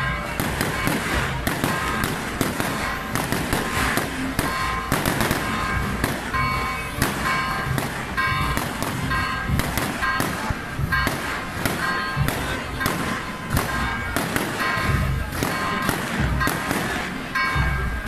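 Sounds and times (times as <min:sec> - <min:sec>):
firecrackers banging: 0:00.0 - 0:18.0
ringing pitched tones: 0:00.0 - 0:18.0.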